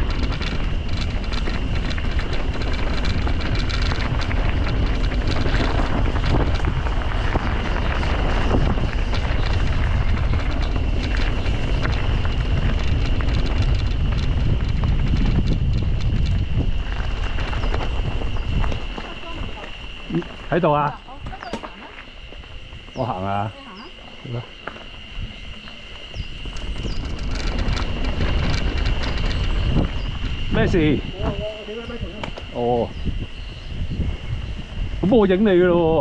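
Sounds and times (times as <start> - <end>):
bike clattering: 0.0 - 30.6
tyres crunching over stones: 0.0 - 33.4
steady high buzz: 0.0 - 36.0
wind rushing over microphone: 0.0 - 36.0.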